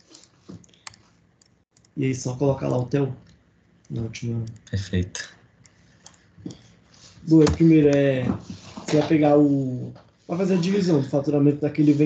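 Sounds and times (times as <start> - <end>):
computer mouse clicks: 0.5 - 2.0, 3.2 - 4.8
keyboard clicks: 3.2 - 4.8.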